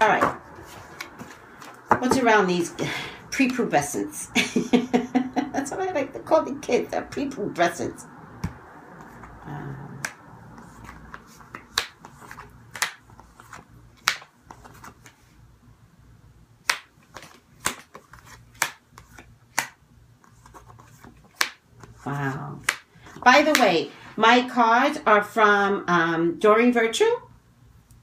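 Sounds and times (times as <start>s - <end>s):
cards rustling: 0.2s - 2.3s, 10.0s - 15.4s, 16.7s - 23.8s
cards snapping on a table: 10.8s - 13.0s, 14.0s - 14.6s, 16.6s - 19.8s, 21.0s - 21.6s.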